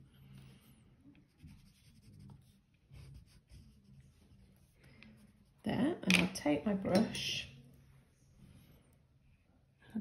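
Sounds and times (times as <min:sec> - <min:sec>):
pencil scratching on paper: 0:00.3 - 0:05.7.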